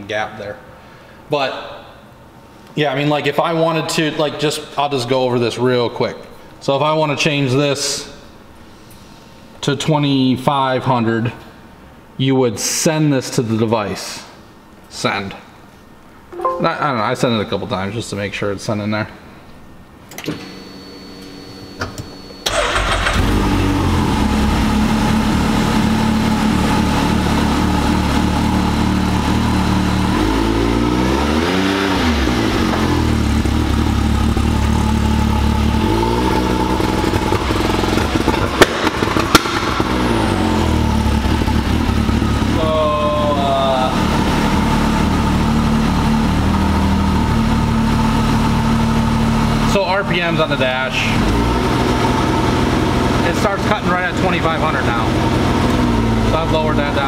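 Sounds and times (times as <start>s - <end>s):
engine revving: 22.5s - 42.6s
engine pops: 38.0s - 40.1s.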